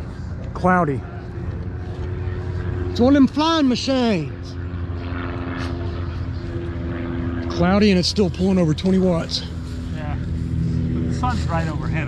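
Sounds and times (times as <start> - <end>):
aircraft engine drone: 0.0 - 12.0.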